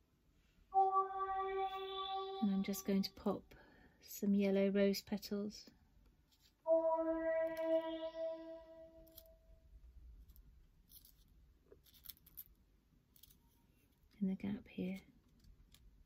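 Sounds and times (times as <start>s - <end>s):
synthesized tone: 0.7s - 3.2s, 6.7s - 9.4s.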